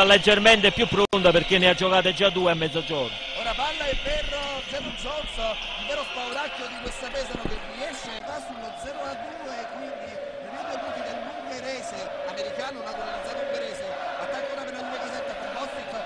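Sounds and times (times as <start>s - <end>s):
crowd din: 3.0s - 16.0s.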